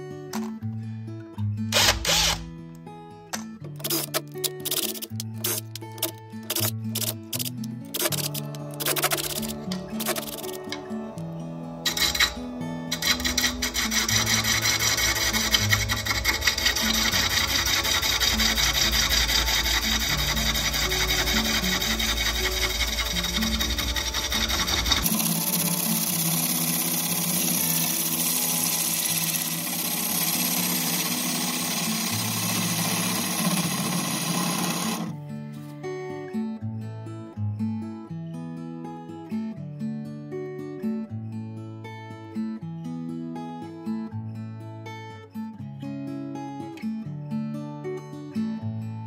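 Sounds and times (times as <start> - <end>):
background music: 0.0 - 37.4
impact driver bursts: 1.7 - 2.5
lathe tool scraping wood: 1.8 - 2.4, 8.0 - 11.0, 11.8 - 35.1.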